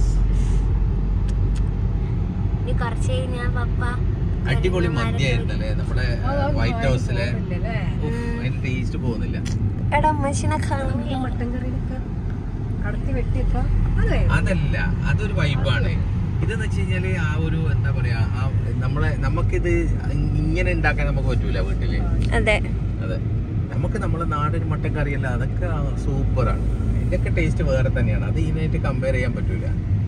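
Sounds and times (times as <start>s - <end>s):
car engine and road rumble: 0.0s - 30.0s
people talking: 2.7s - 12.0s, 12.8s - 29.7s.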